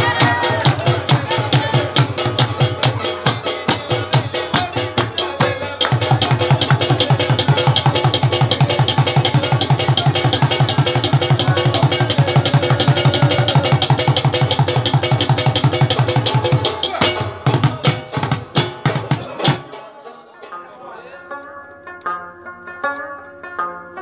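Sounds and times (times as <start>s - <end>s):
fast hand drumming: 0.0s - 19.7s
plucked lute notes: 16.3s - 24.0s.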